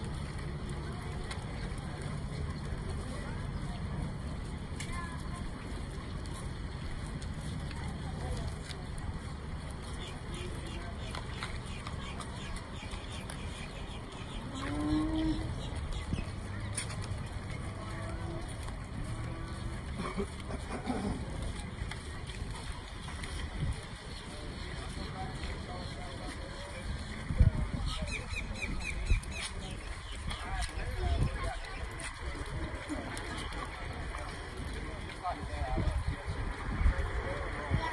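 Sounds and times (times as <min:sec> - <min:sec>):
chatter of onlookers: 0:00.0 - 0:37.9.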